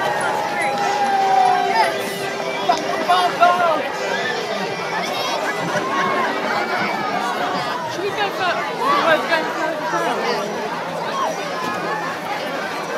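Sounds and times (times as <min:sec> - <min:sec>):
crowd chatter: 0:00.0 - 0:12.9.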